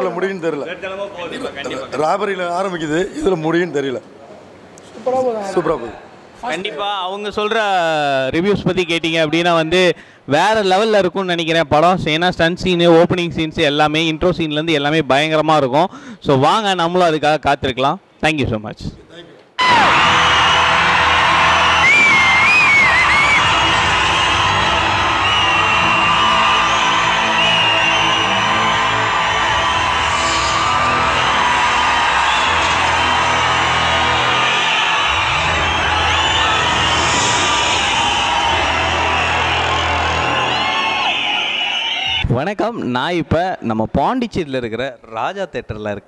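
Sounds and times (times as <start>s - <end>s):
audience cheering and whooping: 19.6s - 42.2s
loud film soundtrack: 19.6s - 42.2s.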